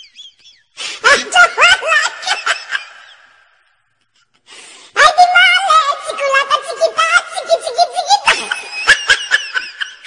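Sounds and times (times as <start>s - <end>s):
high-pitched giggling: 0.0s - 3.4s, 7.0s - 10.0s.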